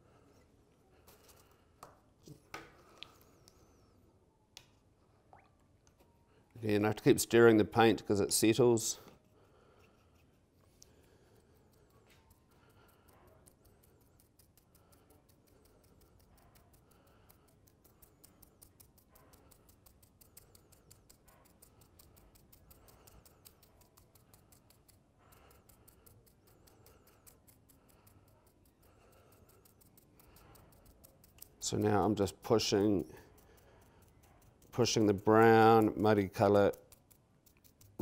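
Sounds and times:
paintbrush scratching: 0:07.8 - 0:38.0.

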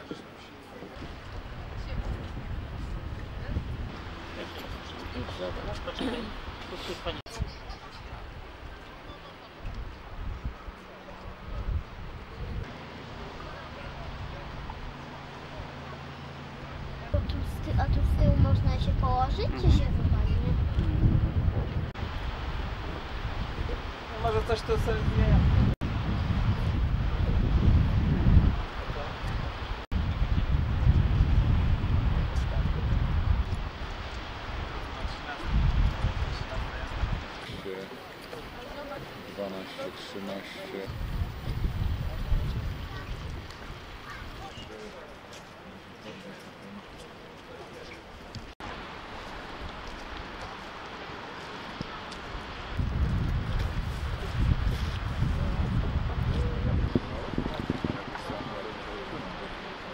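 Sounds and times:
wind buffeting microphone: 0:00.9 - 0:37.7, 0:40.9 - 0:46.0, 0:51.7 - 0:59.9.

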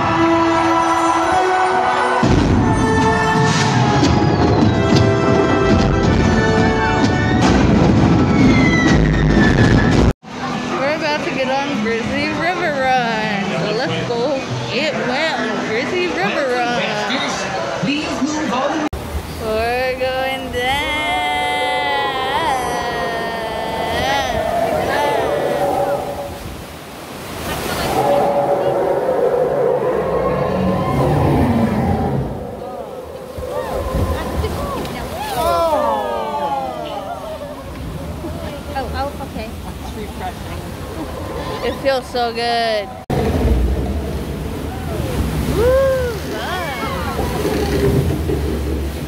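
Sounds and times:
rushing water: 0:00.0 - 0:49.0
music: 0:00.1 - 0:08.6
wind buffeting microphone: 0:19.0 - 0:35.8
people's voices: 0:19.4 - 0:26.4, 0:27.4 - 0:43.0
people calling out: 0:19.5 - 0:26.4, 0:32.5 - 0:37.9.

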